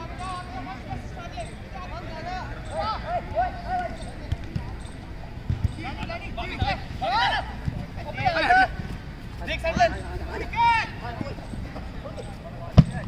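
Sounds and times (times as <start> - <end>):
players shouting: 0.0 - 13.0
ball being kicked: 5.5 - 6.8.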